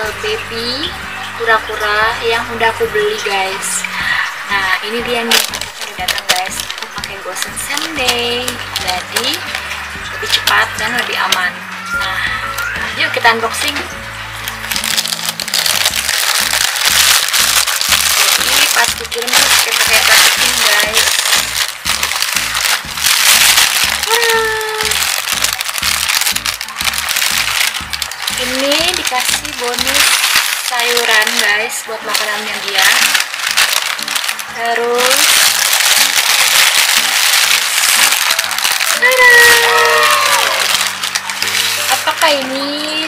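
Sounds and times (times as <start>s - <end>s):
background music with beat: 0.0s - 31.6s
plastic bag crinkling: 1.4s - 43.0s.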